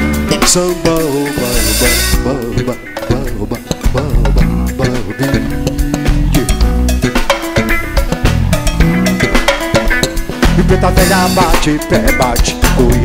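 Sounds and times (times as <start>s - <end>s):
drum kit: 0.0s - 13.0s
jazz band playing: 0.0s - 13.0s.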